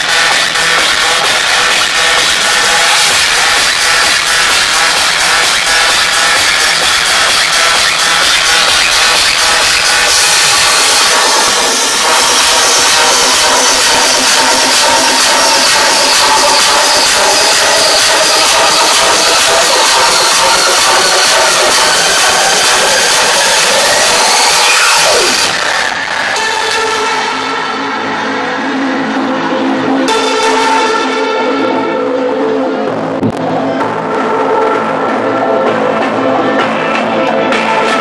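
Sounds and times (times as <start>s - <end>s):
electronic dance music: 0.0s - 38.0s.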